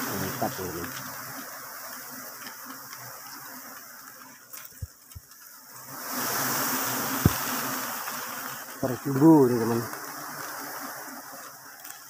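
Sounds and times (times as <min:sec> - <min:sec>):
honeybees buzzing: 0:00.0 - 0:12.0
dull thumps: 0:07.1 - 0:07.6.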